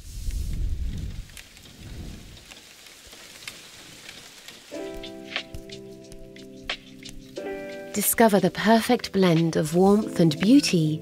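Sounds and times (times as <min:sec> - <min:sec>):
steady rain: 0:00.0 - 0:11.0
soft music with held notes: 0:04.1 - 0:11.0.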